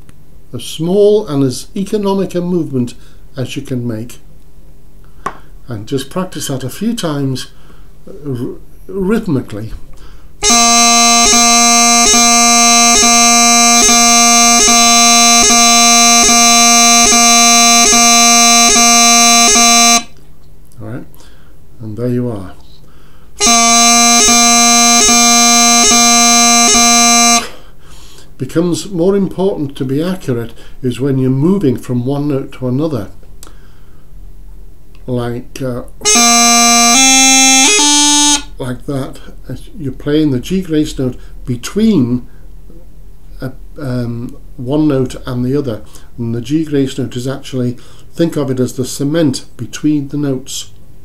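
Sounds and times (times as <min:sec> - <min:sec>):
bagpipe chanter with gracenotes: 0:10.4 - 0:20.1, 0:23.4 - 0:27.6, 0:36.0 - 0:38.6.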